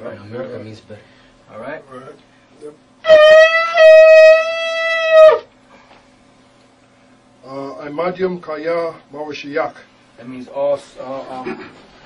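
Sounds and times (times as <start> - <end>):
ram's horn blast: 3.0 - 5.5.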